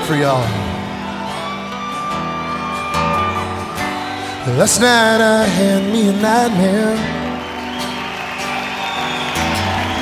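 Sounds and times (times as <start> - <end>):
country band playing live: 0.0 - 10.0.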